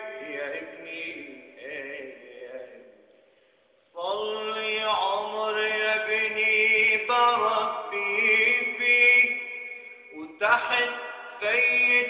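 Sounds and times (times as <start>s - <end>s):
man singing a long vowel: 0.0s - 3.0s, 3.9s - 12.0s.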